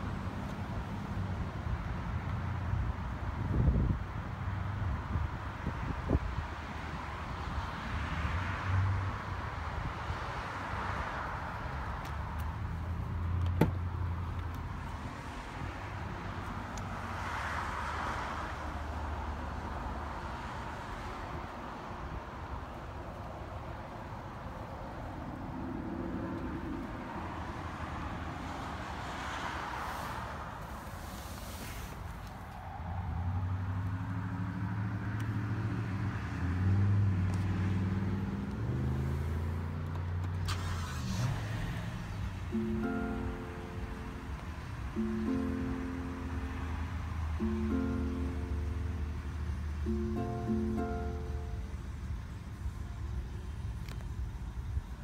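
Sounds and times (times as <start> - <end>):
car door opening: 13.4 - 13.8
car engine starting and idling: 38.4 - 54.5.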